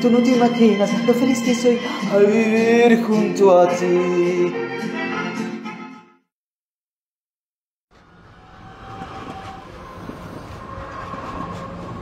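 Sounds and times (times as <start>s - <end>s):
train rumbling: 7.9s - 12.0s.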